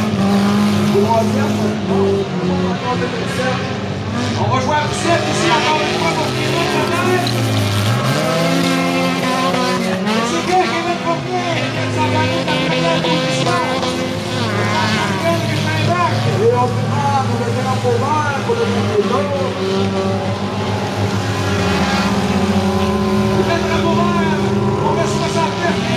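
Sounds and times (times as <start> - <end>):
race car engines revving: 0.0 - 25.9.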